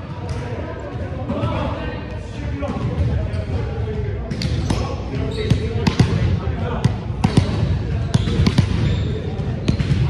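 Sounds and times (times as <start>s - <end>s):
balls bouncing on hardwood floor: 6.8s - 10.0s.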